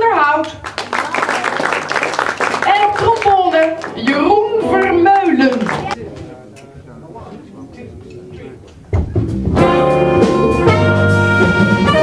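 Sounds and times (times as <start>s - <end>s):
jazz band playing: 8.9s - 12.0s
drums and bass hit: 9.0s - 12.0s
horns and harmonica held notes: 9.6s - 12.0s.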